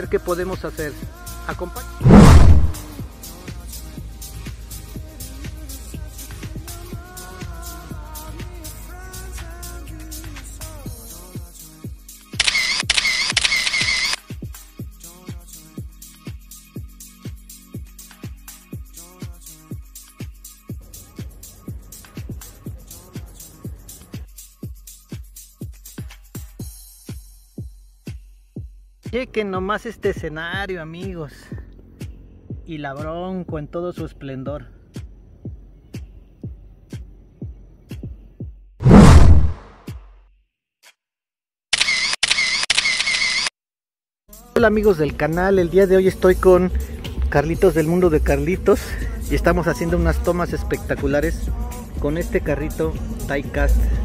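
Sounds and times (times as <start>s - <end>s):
low sound: 2.0s - 2.9s, 38.8s - 39.7s
camera shutter clicks with whirring: 12.4s - 14.2s, 41.8s - 43.5s.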